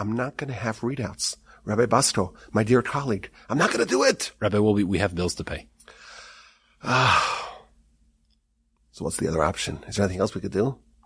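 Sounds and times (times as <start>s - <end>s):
man sighing: 5.9s - 7.8s.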